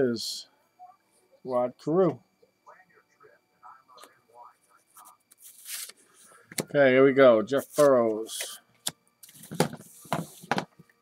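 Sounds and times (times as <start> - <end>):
cardboard cards sliding: 5.4 - 6.0.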